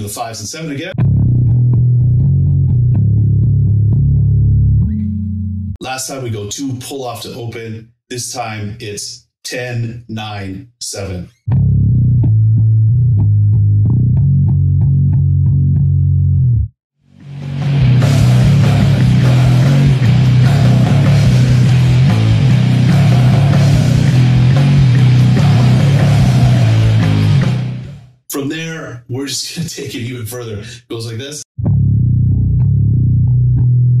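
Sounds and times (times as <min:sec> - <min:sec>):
electric bass riff: 0:01.0 - 0:05.8, 0:11.5 - 0:28.2, 0:31.6 - 0:34.0
loud distorted band: 0:17.2 - 0:28.1.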